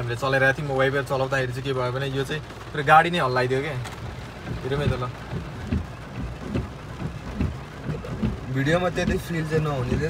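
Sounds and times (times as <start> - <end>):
rain on car roof: 0.0 - 10.0
windscreen wipers sweeping: 0.0 - 10.0.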